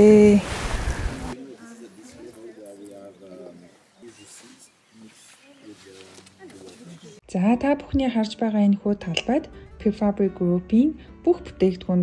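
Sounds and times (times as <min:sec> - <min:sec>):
women talking: 0:00.0 - 0:00.5.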